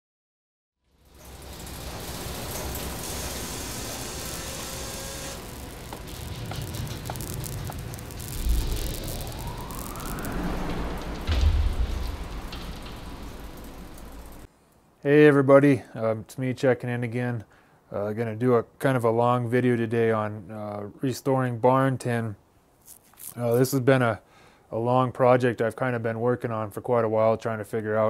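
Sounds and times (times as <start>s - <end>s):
hiss and rumble: 0.9s - 14.5s
rising tone: 1.0s - 14.5s
deep booms: 5.3s - 14.5s.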